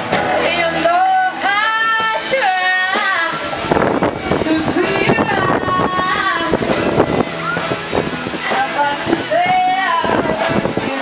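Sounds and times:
crowd voices hubbub: 0.0s - 11.0s
children calling out: 7.2s - 10.1s.

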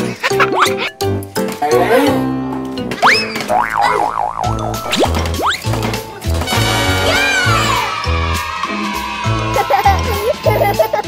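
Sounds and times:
upbeat children's music: 0.0s - 11.0s
cartoon boing: 3.0s - 5.6s.

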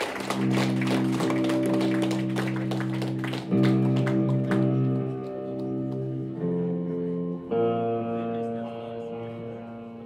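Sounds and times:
electric guitar chord ringing: 0.0s - 10.0s.

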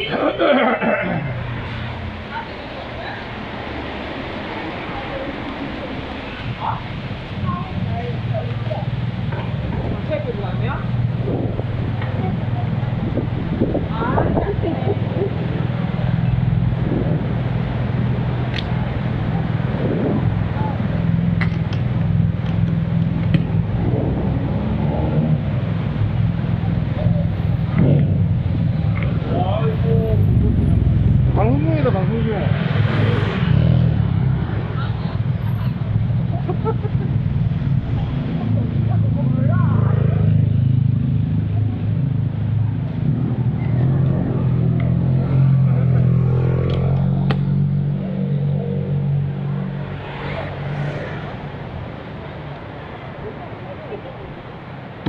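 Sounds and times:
faint voices: 37.2s - 55.0s.

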